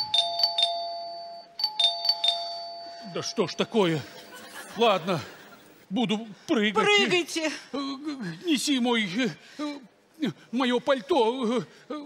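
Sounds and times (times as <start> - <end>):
two-tone doorbell chime: 0.0 - 4.1.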